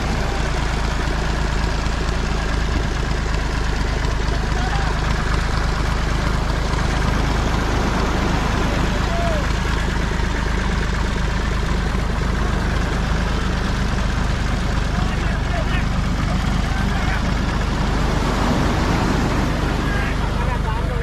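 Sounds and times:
surf washing on beach: 0.0s - 21.0s
tractor engine running: 0.0s - 21.0s
men's voices calling: 2.3s - 21.0s.

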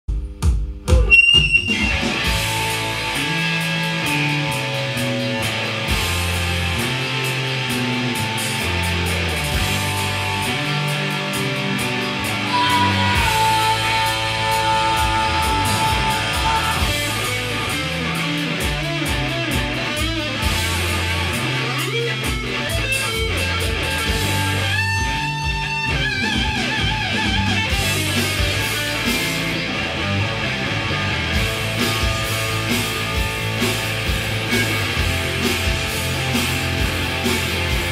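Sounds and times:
bass: 0.0s - 37.9s
drums: 0.0s - 37.9s
electric guitar: 0.9s - 37.9s
live rock band playing: 1.0s - 37.9s.

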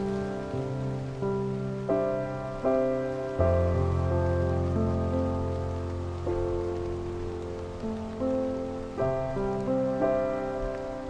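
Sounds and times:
soft improvised piano: 0.0s - 11.0s
steady rain: 0.0s - 11.0s.

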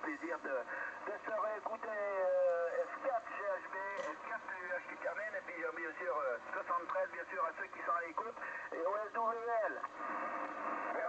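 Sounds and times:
voice through radio speaker: 0.0s - 9.9s.

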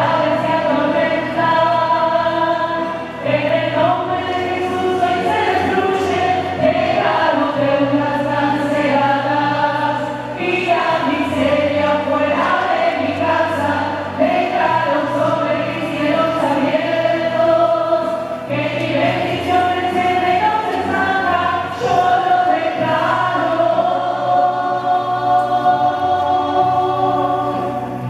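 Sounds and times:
choir singing a hymn: 0.0s - 28.0s
low accompaniment: 0.0s - 28.0s.

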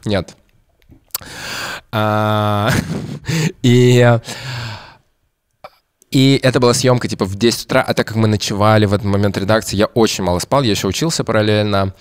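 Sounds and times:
breathy sigh: 1.2s - 1.9s, 2.9s - 3.6s, 4.2s - 5.0s.

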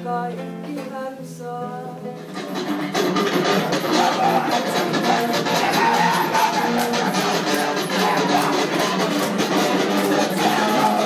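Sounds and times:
guitar music: 0.0s - 11.0s.

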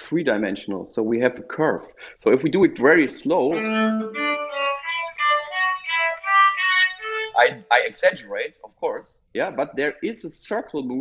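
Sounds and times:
bowed cello notes: 3.0s - 7.6s.

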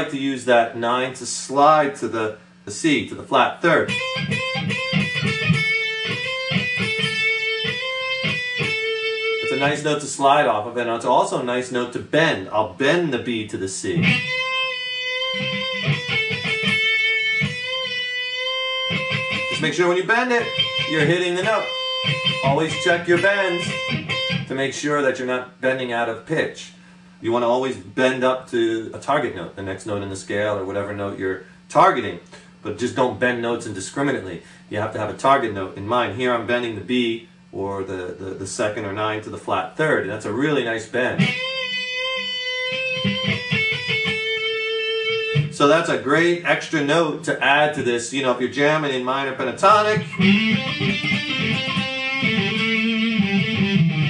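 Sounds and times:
electric guitar note bending: 3.8s - 10.0s, 13.9s - 24.8s, 41.1s - 46.4s, 48.8s - 54.0s.

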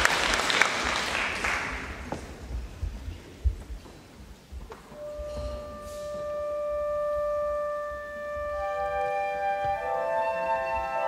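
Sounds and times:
orchestra instruments holding notes: 4.9s - 11.0s
wind instrument long held note: 5.0s - 11.0s.

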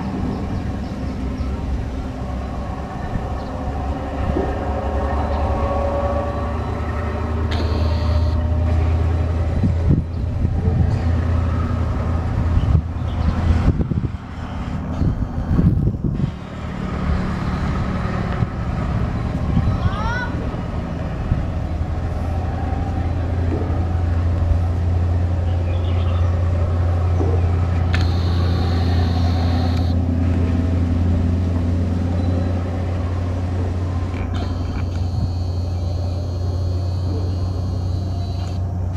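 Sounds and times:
diesel locomotive engine drone: 0.0s - 38.9s.

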